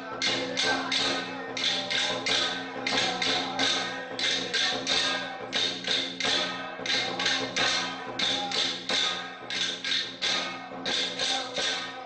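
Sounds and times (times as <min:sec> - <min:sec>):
cymbals crashing: 0:00.0 - 0:12.0.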